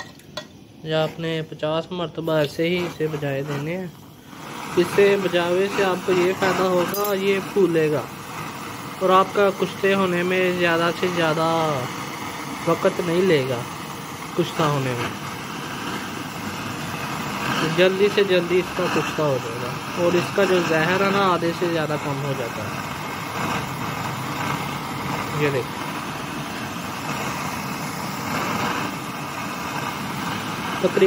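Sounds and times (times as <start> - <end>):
blowtorch flame rushing: 0.0 - 31.0.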